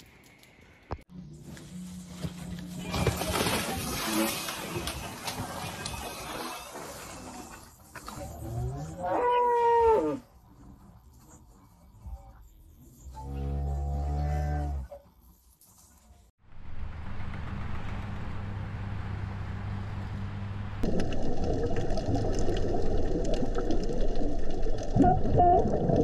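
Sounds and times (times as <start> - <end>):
low hum and noise: 16.4 - 26.0.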